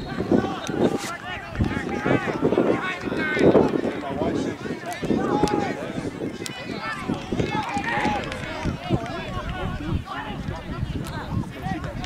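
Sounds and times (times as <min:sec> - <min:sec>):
players and spectators calling out: 0:00.0 - 0:12.0.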